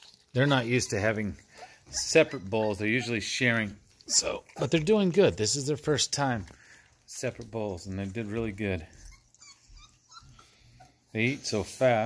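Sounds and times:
puppies whimpering and squeaking: 0.0s - 5.3s, 6.6s - 12.0s.

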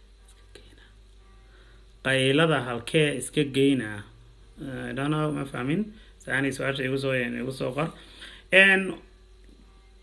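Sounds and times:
low steady hum: 0.0s - 10.0s
man breathing: 8.0s - 8.5s.

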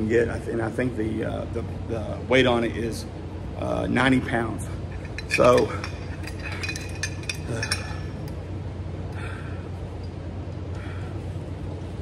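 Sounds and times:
steady low hum: 0.0s - 12.0s
light clicks and clinks: 4.9s - 8.4s.

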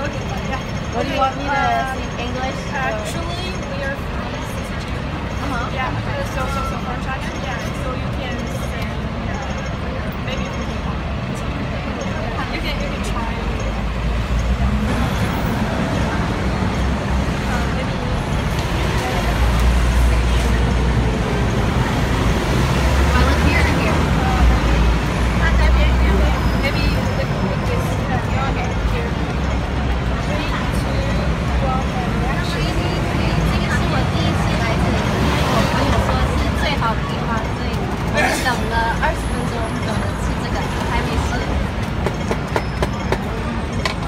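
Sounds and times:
people talking: 0.0s - 14.0s, 14.9s - 41.8s
heavy vehicle engine rumble: 0.0s - 44.0s
passing road traffic: 0.0s - 44.0s.

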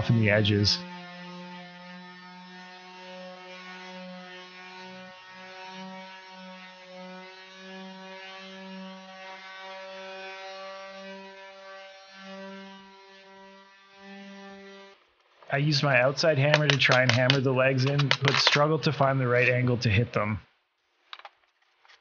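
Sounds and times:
electric sander motor hum: 0.0s - 15.0s.

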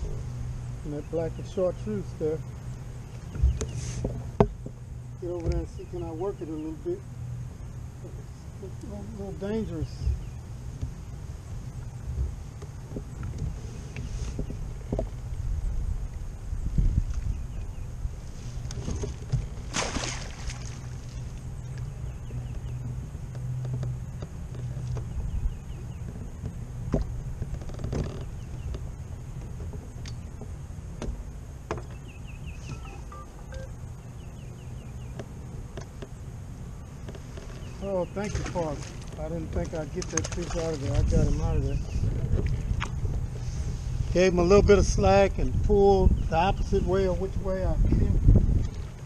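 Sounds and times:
wind noise on microphone: 3.3s - 5.6s, 9.8s - 20.8s, 40.3s - 49.0s
gear knocking against kayak: 11.8s - 15.3s, 21.7s - 33.7s
splash: 19.0s - 21.4s, 40.0s - 41.2s.

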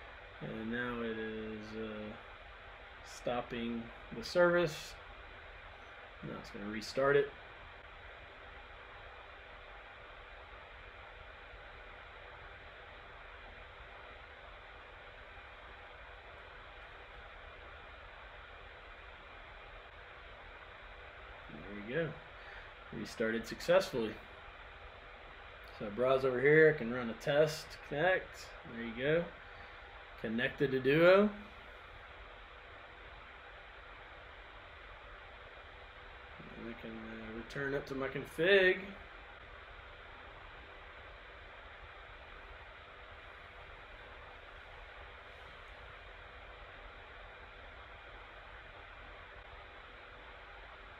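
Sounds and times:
faint steady hum: 0.0s - 50.9s
room and microphone hiss: 0.0s - 50.9s.

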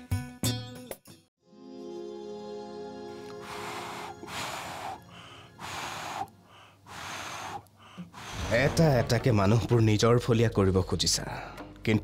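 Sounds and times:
person breathing in noisily: 3.3s - 8.6s.

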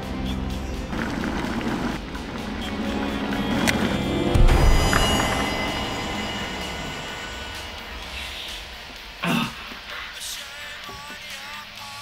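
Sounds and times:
low rumbling drone: 0.0s - 10.5s.

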